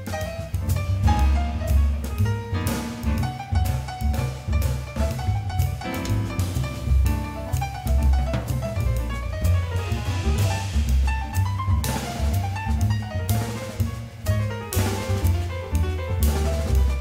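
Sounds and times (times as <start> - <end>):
drum kit: 0.0 - 17.0
low bass line: 0.0 - 17.0
piano: 0.0 - 17.0.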